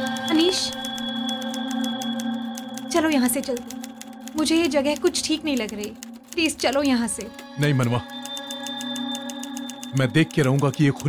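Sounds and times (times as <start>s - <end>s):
printing machinery clattering: 0.0s - 11.0s.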